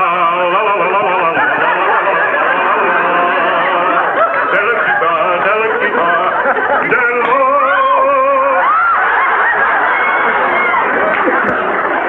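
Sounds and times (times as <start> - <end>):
man singing wordless tune: 0.0 - 8.8.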